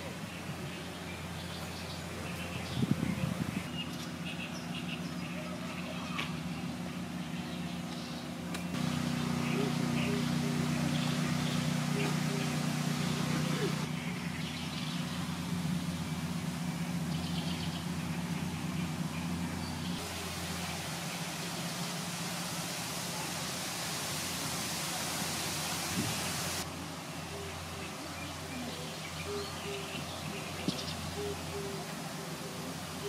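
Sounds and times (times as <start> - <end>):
background hiss: 0.0 - 33.0
steady low hum: 0.0 - 33.0
faint voices: 2.0 - 14.3, 17.9 - 33.0.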